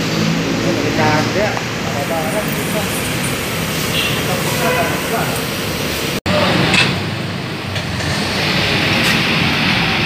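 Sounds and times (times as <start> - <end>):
road traffic rumble: 0.0 - 10.0.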